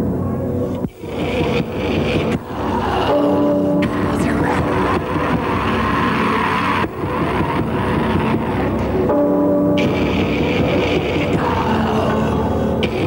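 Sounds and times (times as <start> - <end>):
distorted guitars and drums: 0.8 - 13.0
voice over metal music: 1.0 - 6.8.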